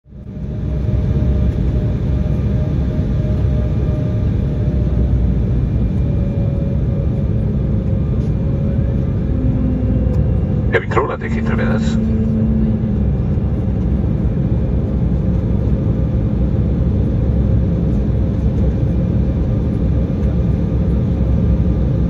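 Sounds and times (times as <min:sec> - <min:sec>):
airliner cabin rumble: 0:00.2 - 0:22.0
jet engine tone: 0:09.2 - 0:13.6.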